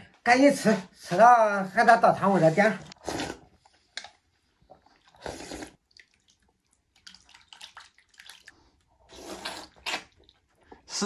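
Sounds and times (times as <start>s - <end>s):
man slurping noodles: 2.4s - 3.8s, 5.0s - 5.9s, 9.0s - 10.3s.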